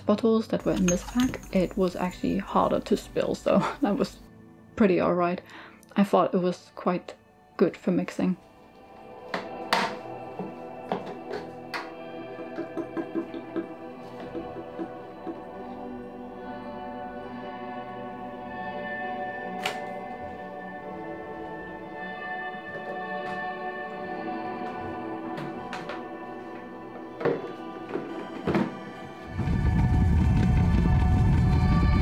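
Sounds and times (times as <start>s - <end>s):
background music: 0.0s - 32.0s.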